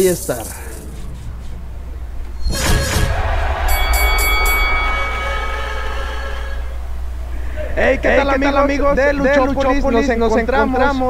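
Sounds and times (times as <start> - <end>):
low steady hum: 0.0 - 11.0
ringing electronic chord: 2.5 - 7.2
sparkling high chimes: 3.5 - 6.6.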